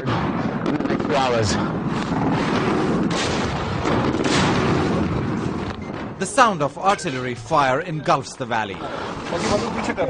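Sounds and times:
rumble of shelling: 0:00.0 - 0:06.2
sharp artillery reports: 0:00.0 - 0:09.8.

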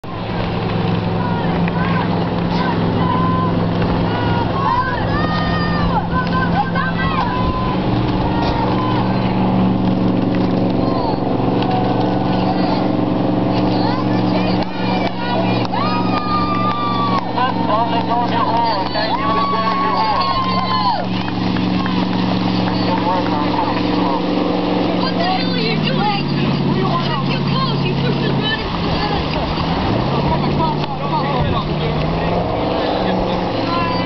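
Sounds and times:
outboard motors droning: 0:00.0 - 0:34.0
crowd shouting encouragement: 0:01.1 - 0:09.7, 0:10.5 - 0:31.5.

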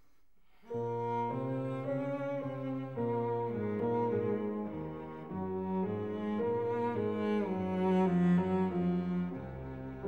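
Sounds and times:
cello bowed low notes: 0:00.6 - 0:10.0.

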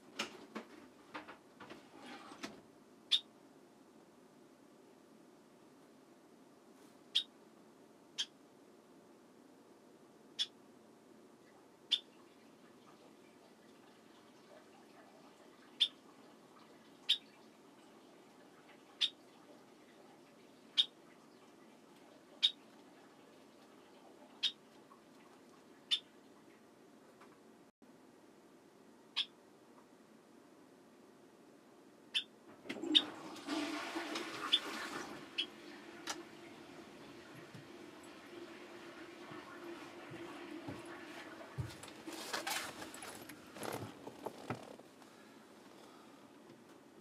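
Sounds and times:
faint room noise: 0:00.0 - 0:47.0
toilet flushing: 0:32.5 - 0:44.1
cistern refilling hum: 0:32.5 - 0:46.4.

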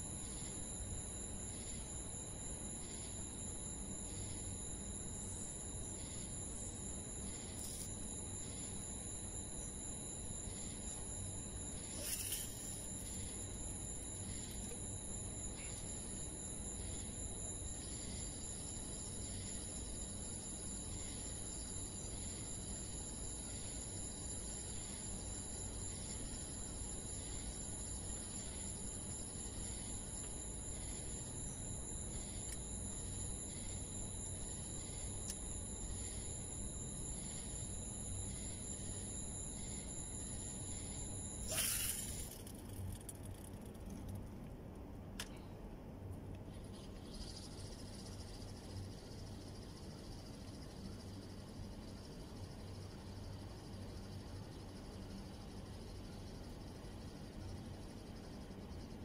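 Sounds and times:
thin high-pitched whine: 0:00.0 - 0:44.5, 0:45.1 - 0:59.0.

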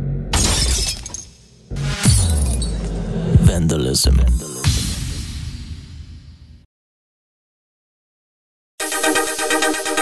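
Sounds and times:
glass breaking crash: 0:00.3 - 0:02.9
low bass tone: 0:01.7 - 0:04.4.

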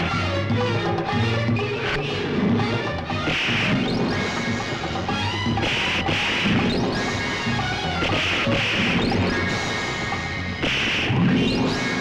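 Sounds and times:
film background score: 0:00.0 - 0:12.0.

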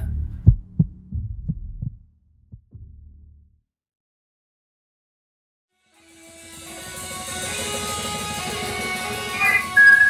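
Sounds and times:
heartbeat thumps: 0:00.0 - 0:03.4
low hum: 0:00.0 - 0:03.6.

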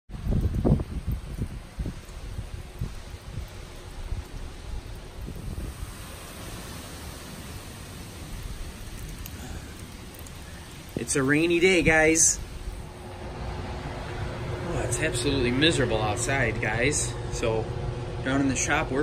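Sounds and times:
wind gusting on microphone: 0:00.1 - 0:07.0
rain hiss: 0:00.1 - 0:19.0.

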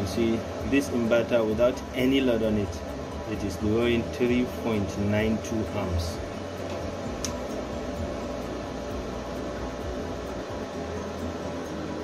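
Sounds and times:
inverters humming: 0:00.0 - 0:12.0
sharp click: 0:06.6 - 0:07.5.

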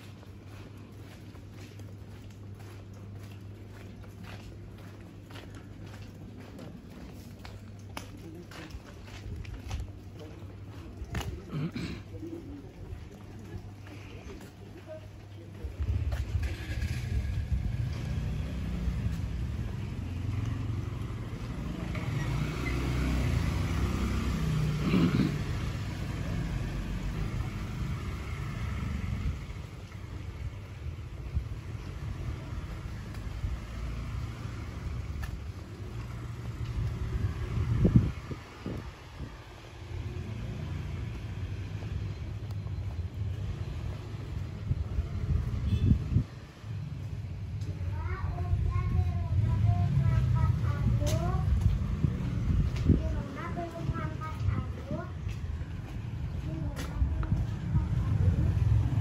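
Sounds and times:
low rumble of traffic: 0:00.0 - 0:59.0.

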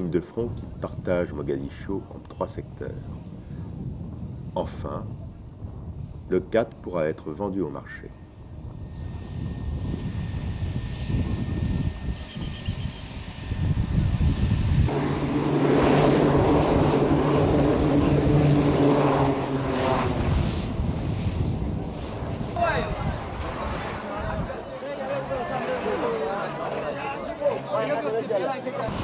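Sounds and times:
propeller plane engines droning: 0:00.0 - 0:29.0.

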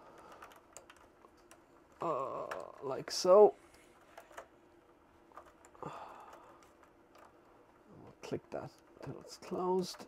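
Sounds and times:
faint plastic clicks: 0:00.0 - 0:10.0.

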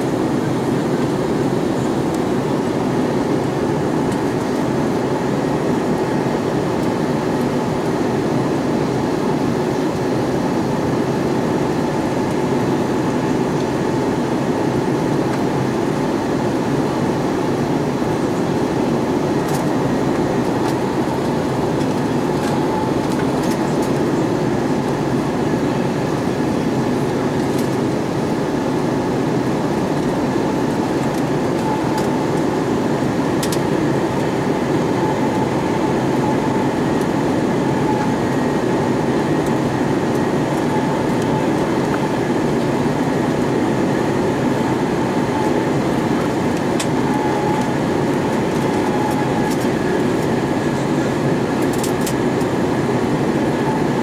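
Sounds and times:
faint steady whine: 0:00.0 - 0:54.0
airplane cabin rumble: 0:10.7 - 0:54.0.

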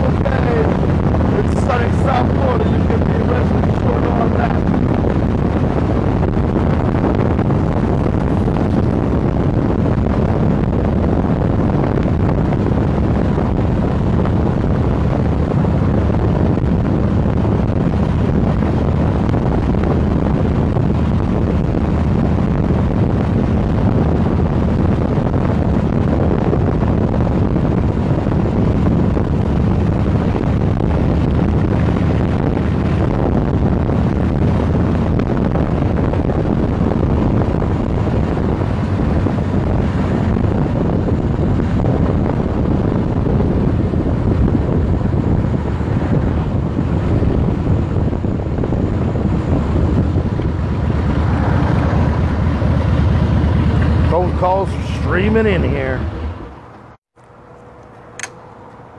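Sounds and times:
motorcycle engine running: 0:00.0 - 0:58.9
wind buffeting microphone: 0:00.0 - 0:58.9.

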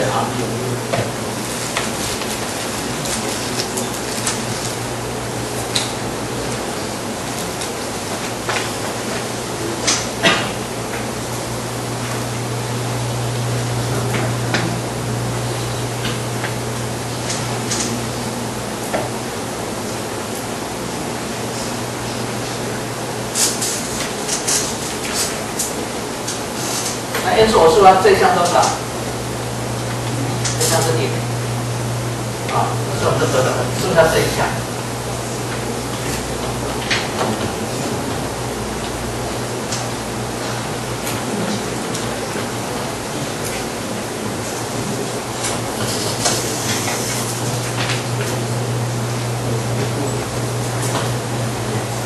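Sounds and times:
low even hum: 0:00.0 - 0:52.0.

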